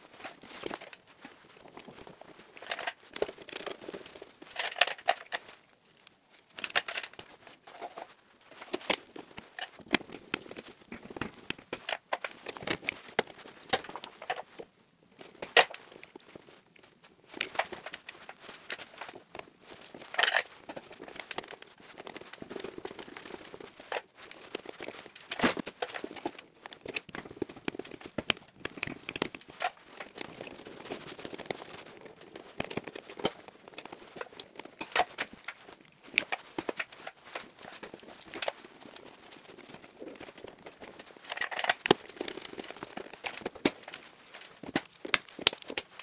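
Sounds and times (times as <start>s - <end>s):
cables rustling: 0.0s - 46.0s.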